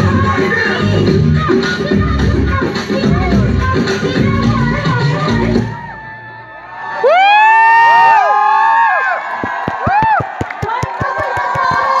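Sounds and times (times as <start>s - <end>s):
audience cheering and whooping: 5.6s - 12.0s
quick sharp knocks: 9.4s - 12.0s.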